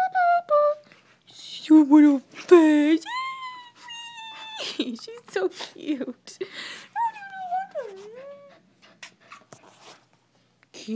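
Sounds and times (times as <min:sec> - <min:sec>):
dog whining: 0:03.0 - 0:05.0.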